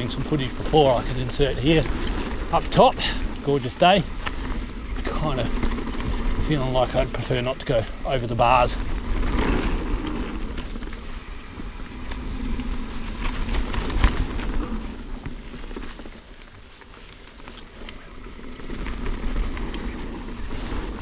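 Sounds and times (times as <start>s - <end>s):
bike rattling: 0.0s - 21.0s
bike tyres rolling over dirt: 0.0s - 21.0s
wind rumble on microphone: 0.0s - 21.0s.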